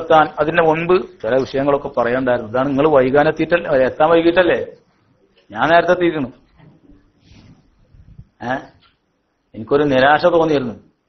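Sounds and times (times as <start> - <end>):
man speaking: 0.0 - 4.8, 5.5 - 6.5, 8.4 - 8.9.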